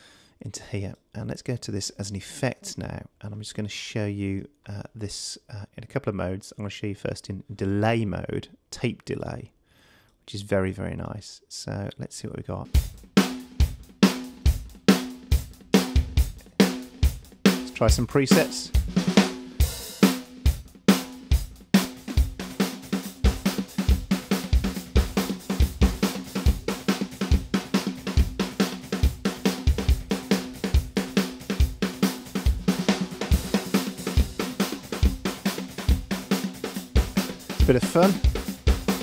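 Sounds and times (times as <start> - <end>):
drum beat with delay repeats: 12.7 - 39.0.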